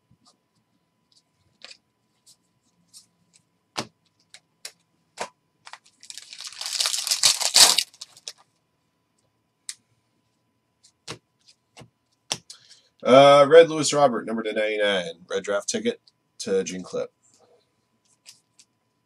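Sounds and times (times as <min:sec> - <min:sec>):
wrapper ripping open: 0:05.7 - 0:08.4.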